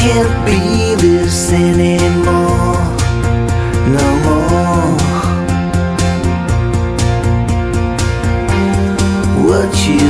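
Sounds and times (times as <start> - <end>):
rock music with guitars and drums: 0.0 - 10.0.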